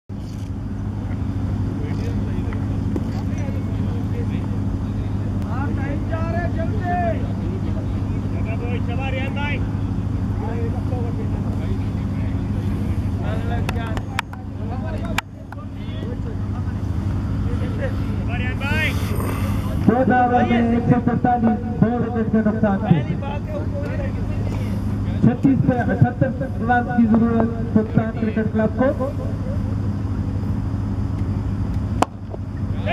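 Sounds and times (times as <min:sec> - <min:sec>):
low machine hum: 0:00.1 - 0:32.9.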